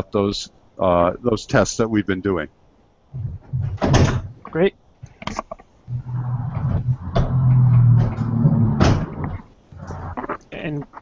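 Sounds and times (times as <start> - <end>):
microphone scraping: 3.1 - 11.0
steady low buzz: 5.8 - 10.3.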